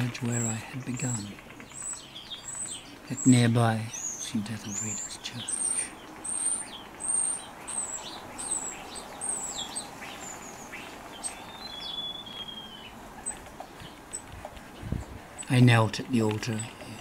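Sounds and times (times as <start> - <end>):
small songbird singing: 0.0 - 17.0.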